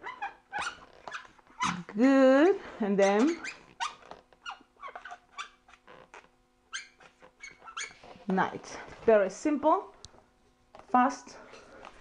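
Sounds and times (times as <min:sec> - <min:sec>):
marker squeaking on balloon: 0:00.0 - 0:02.0, 0:02.6 - 0:08.6.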